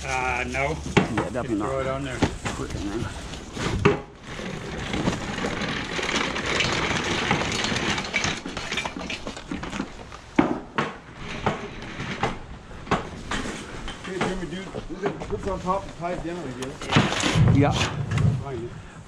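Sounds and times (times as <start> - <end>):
junk rustling and clattering: 0.0 - 18.7.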